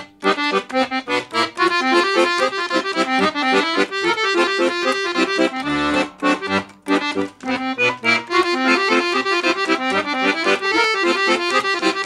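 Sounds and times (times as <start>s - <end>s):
piano accordion playing quick tune: 0.0s - 12.0s.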